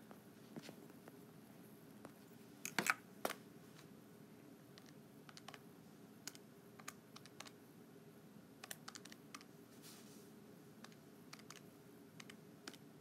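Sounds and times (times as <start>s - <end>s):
low room hum: 0.0s - 13.0s
calculator keys clicking: 8.6s - 9.5s, 10.8s - 11.6s.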